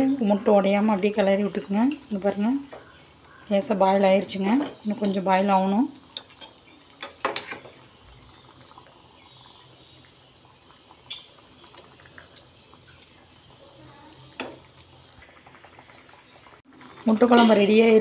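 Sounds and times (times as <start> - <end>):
curry bubbling: 0.0 - 18.0.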